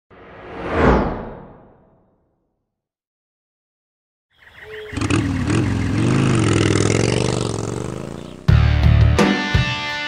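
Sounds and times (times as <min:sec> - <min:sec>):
whoosh: 0:00.1 - 0:02.4.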